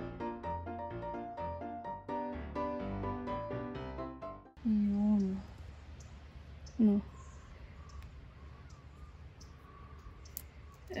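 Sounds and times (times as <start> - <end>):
magnet clicking on screen mesh: 9.4 - 11.0.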